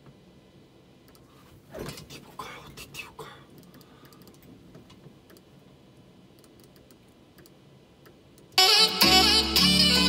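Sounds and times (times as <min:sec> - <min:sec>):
soft whispering: 0:01.7 - 0:03.9
keyboard and mouse clicks: 0:03.6 - 0:05.5, 0:06.4 - 0:08.6.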